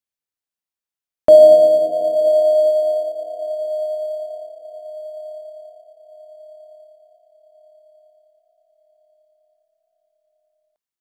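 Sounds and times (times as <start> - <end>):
ringing tone of struck object: 1.3 - 8.2.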